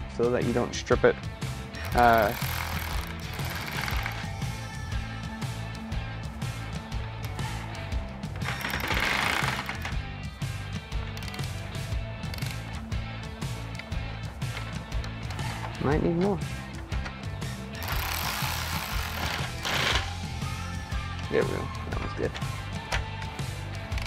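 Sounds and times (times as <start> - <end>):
background music with beat: 0.0 - 24.0
electric ratchet driving bolt: 1.8 - 4.4, 8.4 - 9.9, 11.1 - 11.6, 12.2 - 12.9, 17.8 - 20.1, 23.8 - 24.0.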